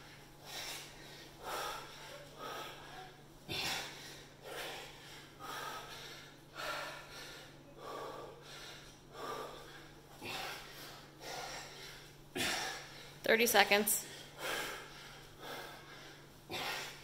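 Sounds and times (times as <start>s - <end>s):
man breathing hard: 0.0s - 13.2s, 14.0s - 17.0s.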